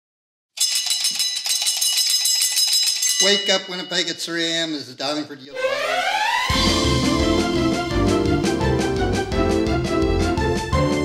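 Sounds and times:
telephone bell ringing: 0.6 - 4.3.

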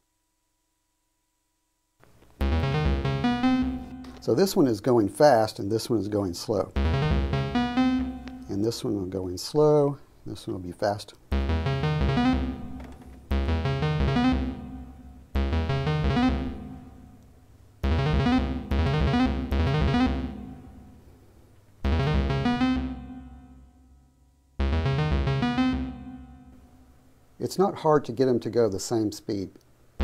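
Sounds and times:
synthesizer stepping notes: 2.4 - 9.1, 11.3 - 21.0, 21.8 - 23.9, 24.6 - 26.7.

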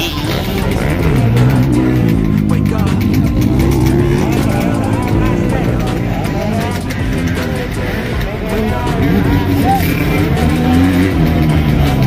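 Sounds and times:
loudspeaker music: 0.0 - 12.0
motorcycle engines revving: 0.0 - 12.0
voices: 0.0 - 12.0.

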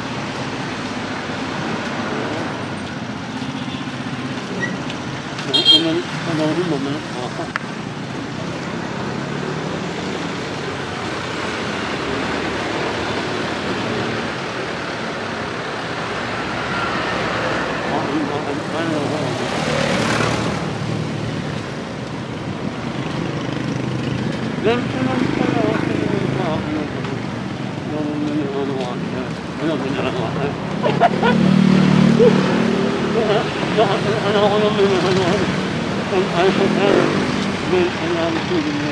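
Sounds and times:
street traffic noise: 0.0 - 38.9.

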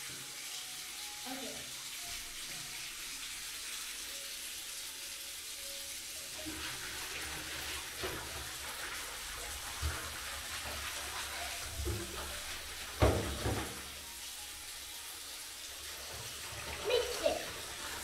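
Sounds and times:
water running into bathtub: 0.0 - 18.0.

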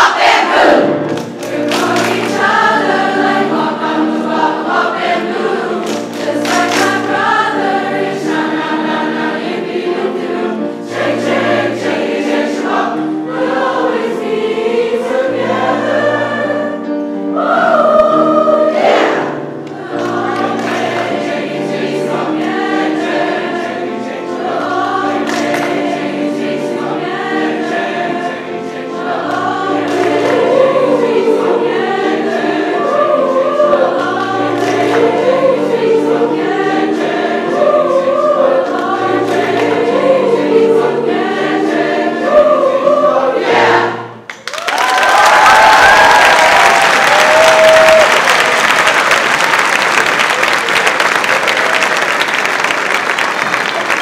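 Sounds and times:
children's chorus singing: 0.0 - 44.3, 44.9 - 49.6
string orchestra: 0.0 - 44.3.

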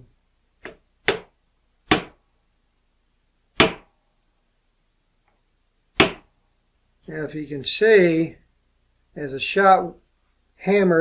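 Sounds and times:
hammer striking metal punch: 1.9 - 2.2, 3.6 - 3.9, 6.0 - 6.2.

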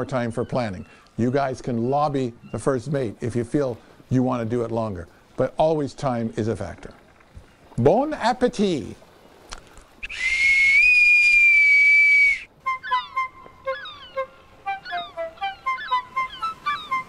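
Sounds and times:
bosun's pipe shrill note: 10.0 - 17.0
light flute-like tune: 10.0 - 17.0.

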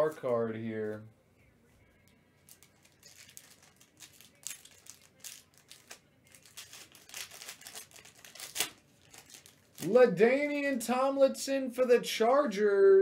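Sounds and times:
plastic wrapper crinkling and tearing: 2.4 - 10.1.

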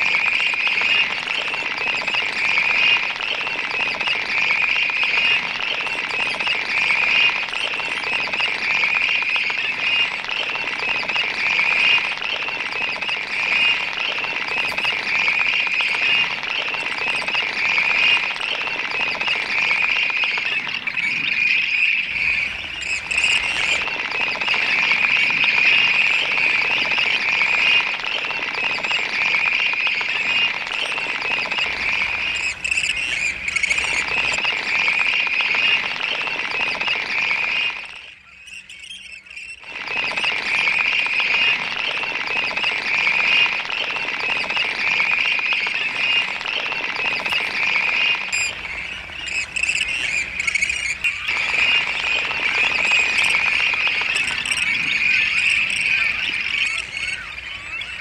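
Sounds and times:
chorus of high calls: 0.0 - 58.0.

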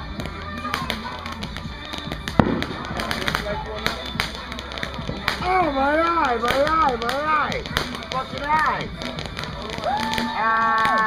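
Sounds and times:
firework fountain spraying sparks: 0.0 - 11.0
sharp crackling pops: 0.0 - 11.0.

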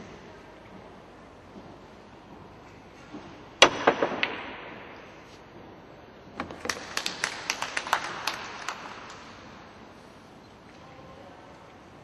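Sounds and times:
sparse hand-clapping: 6.6 - 9.3.

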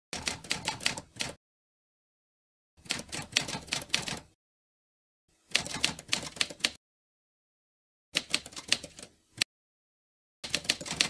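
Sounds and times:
rapid keyboard key clicks: 5.6 - 6.8, 8.2 - 9.1, 10.4 - 11.0.

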